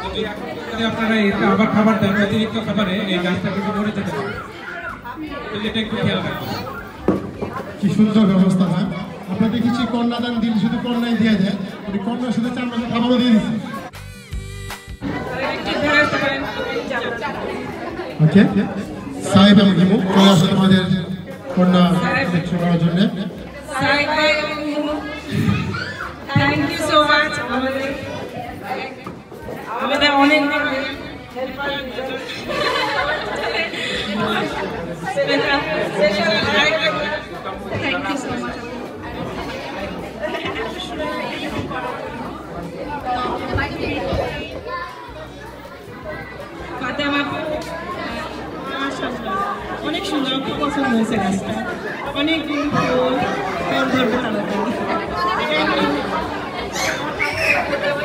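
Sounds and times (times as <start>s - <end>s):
crowd chattering in a hall: 0.0s - 58.0s.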